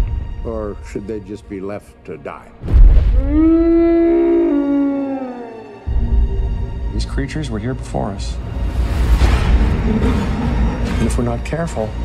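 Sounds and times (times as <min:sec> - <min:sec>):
deep boom: 0:02.6 - 0:03.4
low dinosaur call: 0:03.2 - 0:05.9.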